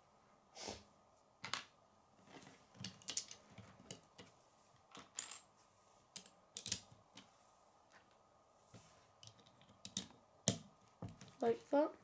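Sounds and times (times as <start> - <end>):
plastic bricks clicking: 9.2 - 10.6.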